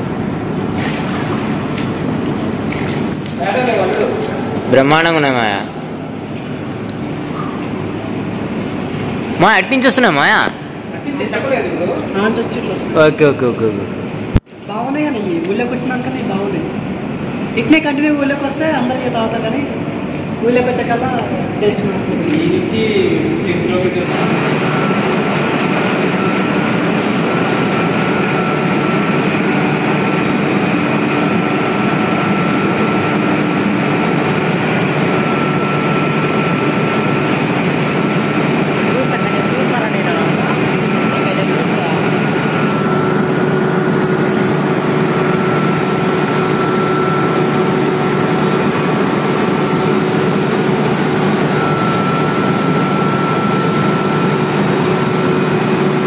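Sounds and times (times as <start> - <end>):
water pumps droning: 0.0 - 56.0
high whine: 15.9 - 56.0.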